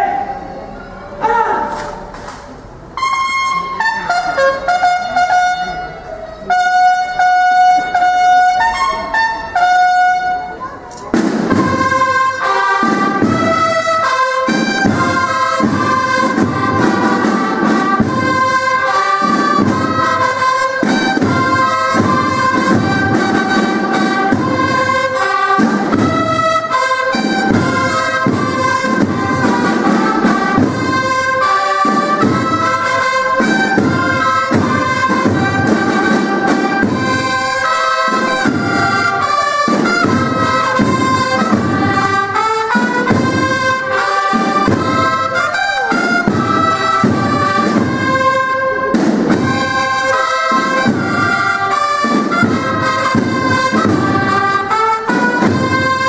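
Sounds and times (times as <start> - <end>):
bugle and drum band playing: 1.2 - 56.0.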